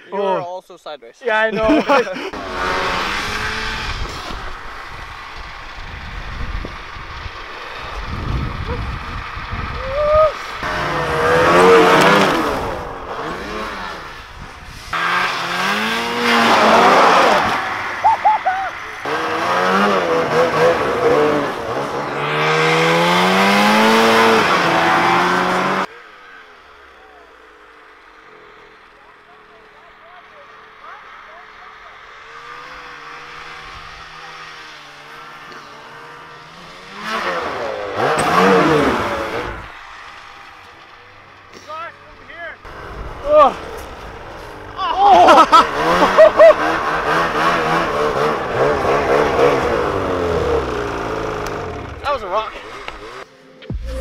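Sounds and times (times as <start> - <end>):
snowmobile engines revving: 0.0 - 54.0.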